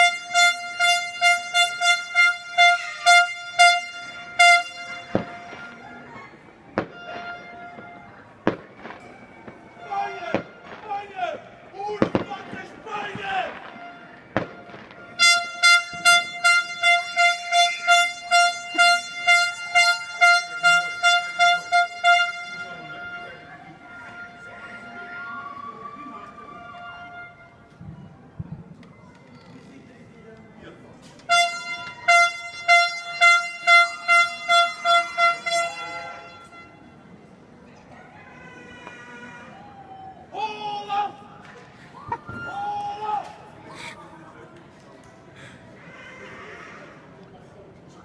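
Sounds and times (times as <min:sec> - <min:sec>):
horn short blasts: 0:00.0 - 0:06.0, 0:06.8 - 0:08.3, 0:13.5 - 0:25.4, 0:31.3 - 0:37.0.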